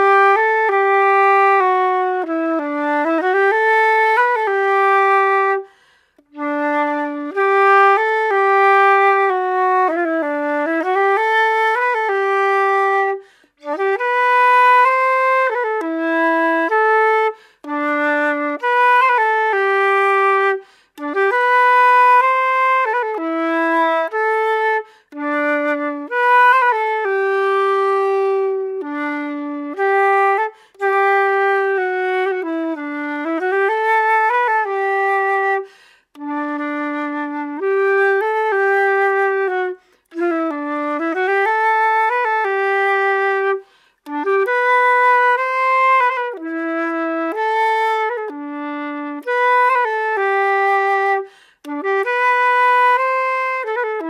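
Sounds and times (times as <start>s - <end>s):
solo flute melody: 0.0s - 54.0s.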